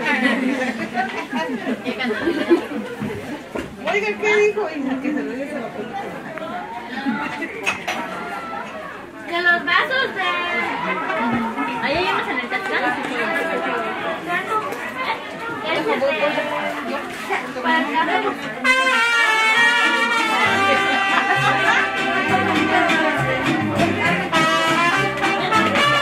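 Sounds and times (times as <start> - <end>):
crowd chatter: 0.0 - 26.0.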